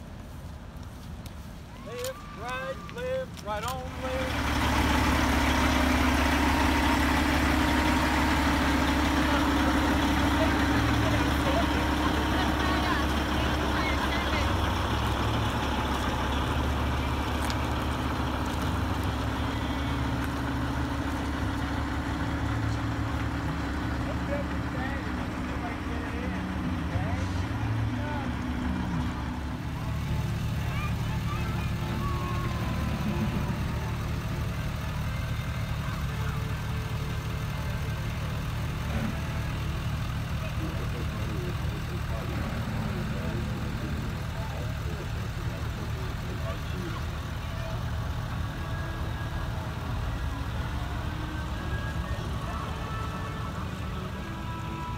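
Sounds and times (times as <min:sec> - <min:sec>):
diesel truck engine droning: 0:00.0 - 0:54.9
vehicles rolling by: 0:00.0 - 0:54.9.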